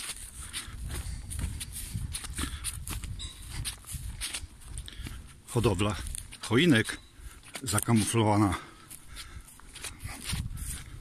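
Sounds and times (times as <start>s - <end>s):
low wind rumble on microphone: 0.0s - 6.4s, 9.2s - 11.0s
footsteps crunching through dry grass: 0.0s - 11.0s.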